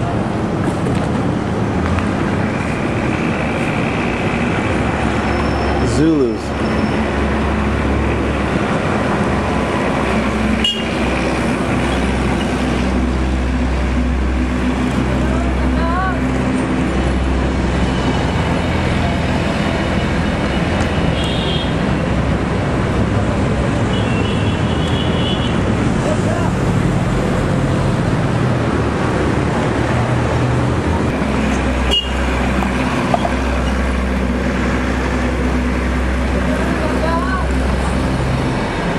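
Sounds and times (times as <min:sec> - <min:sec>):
traffic rumble: 0:00.0 - 0:38.9
indistinct voices: 0:31.2 - 0:38.9.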